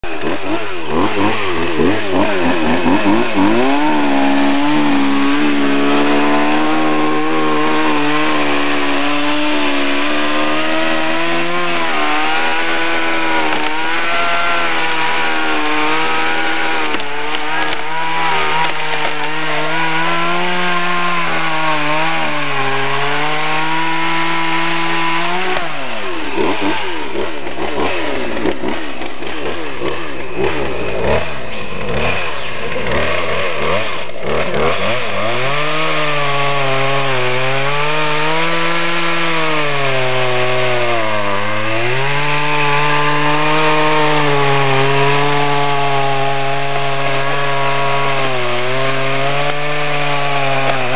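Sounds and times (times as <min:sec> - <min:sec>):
chainsaw cutting wood: 0:00.0 - 0:50.9.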